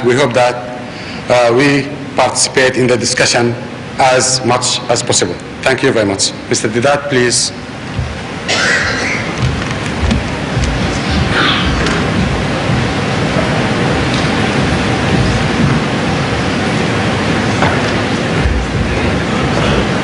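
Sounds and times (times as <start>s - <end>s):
speech: 0.0s - 0.6s, 1.3s - 7.6s.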